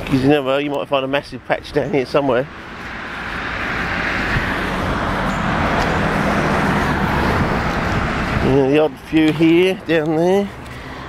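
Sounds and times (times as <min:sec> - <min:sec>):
vehicle driving past: 0:02.4 - 0:08.9.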